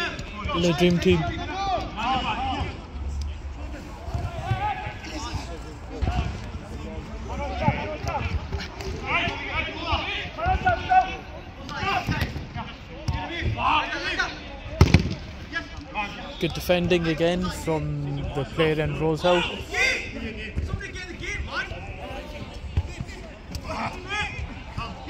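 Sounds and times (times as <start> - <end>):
men calling and shouting: 0.0 - 25.0.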